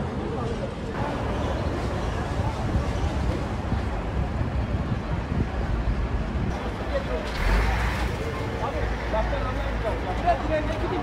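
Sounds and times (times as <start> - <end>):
vehicle engines idling: 1.0 - 11.0.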